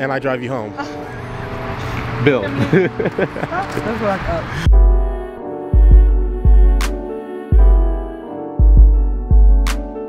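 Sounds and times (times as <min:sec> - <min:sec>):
car going by: 0:00.8 - 0:04.7.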